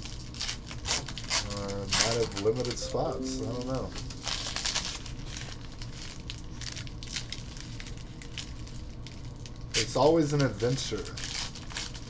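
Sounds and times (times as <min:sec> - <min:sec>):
card pack wrapper crinkling: 0:00.0 - 0:02.8, 0:04.2 - 0:09.7, 0:10.3 - 0:12.0.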